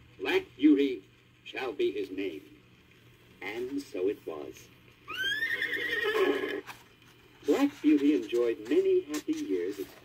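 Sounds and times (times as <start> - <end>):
horse whinnying: 5.1 - 6.7.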